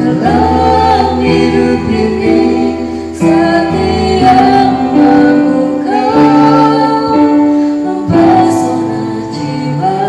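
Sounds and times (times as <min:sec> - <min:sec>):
electronic keyboard: 0:00.0 - 0:10.0
woman singing church song: 0:00.0 - 0:10.0.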